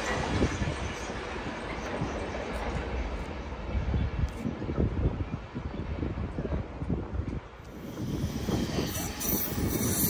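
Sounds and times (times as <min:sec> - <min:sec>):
passenger train rumbling: 0:00.0 - 0:10.0
wind buffeting microphone: 0:00.0 - 0:10.0.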